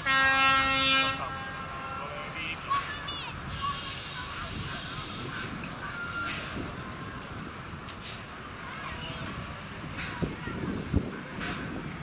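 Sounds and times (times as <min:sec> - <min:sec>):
train rumbling on rails: 0:00.0 - 0:12.0.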